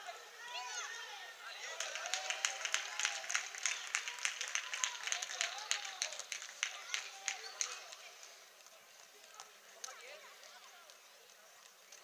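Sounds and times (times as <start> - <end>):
distant children's voices: 3.5 - 12.0.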